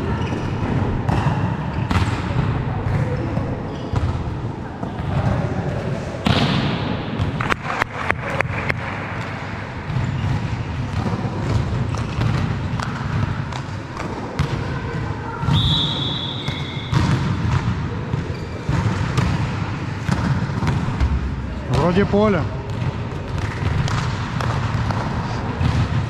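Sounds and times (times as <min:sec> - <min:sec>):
volleyball strike: 0:00.2 - 0:03.1, 0:06.2 - 0:09.3, 0:15.4 - 0:21.9, 0:22.6 - 0:26.0
ball bouncing on court floor: 0:00.2 - 0:05.4, 0:06.2 - 0:15.7, 0:16.4 - 0:26.0.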